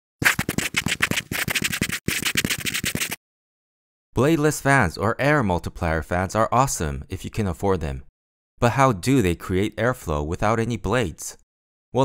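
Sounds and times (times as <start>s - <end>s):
pen scribbling on paper: 0.2s - 3.2s.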